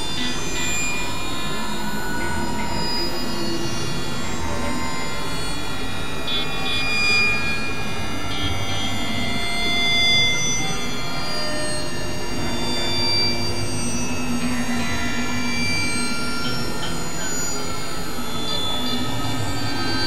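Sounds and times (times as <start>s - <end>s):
electronic noise bed: 0.0s - 20.0s
sustained electronic drones: 0.0s - 20.0s.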